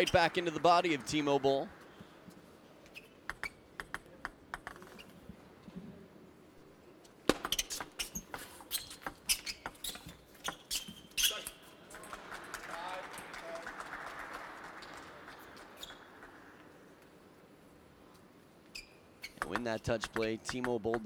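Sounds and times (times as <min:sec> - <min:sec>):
table tennis ball rally: 0:00.0 - 0:01.6, 0:07.3 - 0:13.6, 0:19.3 - 0:21.0
audience applauding and cheering: 0:00.0 - 0:01.8, 0:11.9 - 0:17.0.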